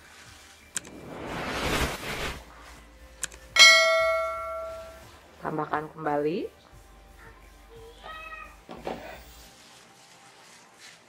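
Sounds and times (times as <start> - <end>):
rush of noise: 0.8 - 2.4
bright bell ding: 3.6 - 5.1.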